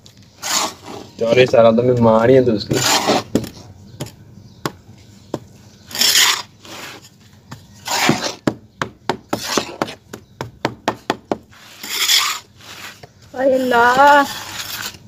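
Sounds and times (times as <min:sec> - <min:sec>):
trowel scraping soil: 0:00.2 - 0:01.5, 0:02.7 - 0:03.6, 0:05.8 - 0:08.4, 0:09.3 - 0:10.0, 0:11.5 - 0:15.0.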